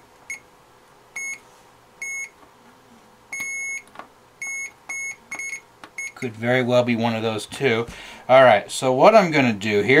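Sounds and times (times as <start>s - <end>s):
multimeter continuity beeps: 1.2s - 1.4s, 2.0s - 2.4s, 3.3s - 6.3s.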